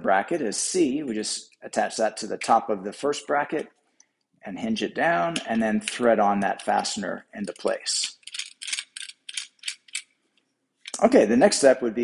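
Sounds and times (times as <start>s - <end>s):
fastener ratcheting clicks: 7.5s - 10.1s.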